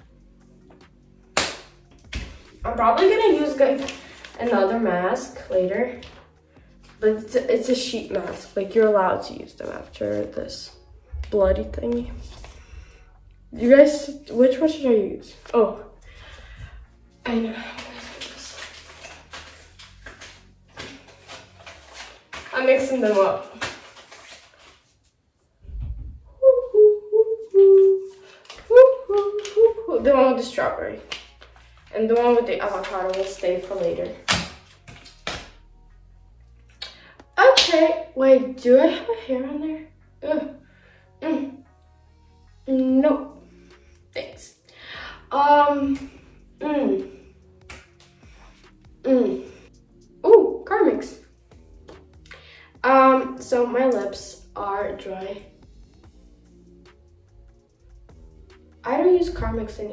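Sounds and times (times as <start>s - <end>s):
low rumble: 9.8s - 14.0s, 25.6s - 26.5s
faint low tones: 9.8s - 17.3s, 25.6s - 28.0s
girl humming: 26.3s - 29.9s.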